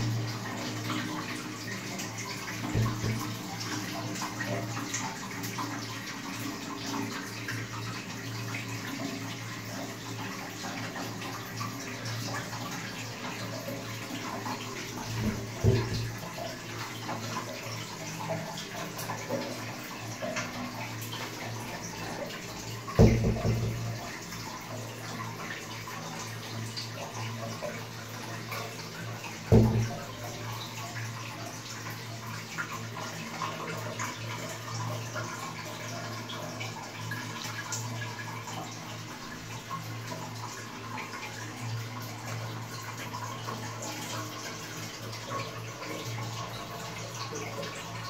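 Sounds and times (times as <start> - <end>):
toilet cistern filling with water: 0.0 - 48.0
knock: 2.8 - 3.3, 15.2 - 16.2, 23.0 - 24.0, 29.5 - 30.0.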